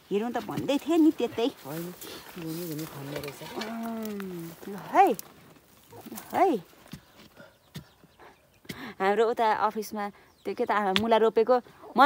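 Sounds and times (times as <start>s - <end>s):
digging stick scraping soil: 0.1s - 8.0s.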